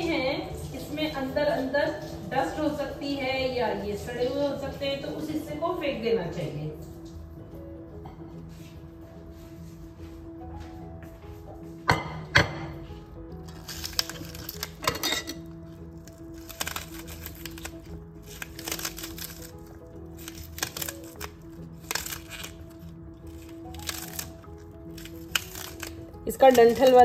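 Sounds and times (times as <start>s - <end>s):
knife slicing spring onion: 20.2s - 22.7s, 23.3s - 27.0s.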